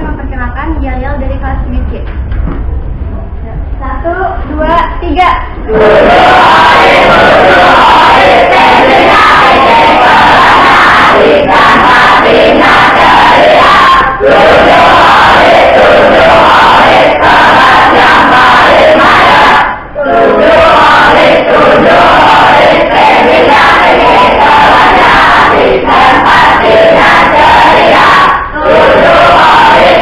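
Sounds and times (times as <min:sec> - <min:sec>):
students chanting and shouting: 0:04.6 - 0:30.0.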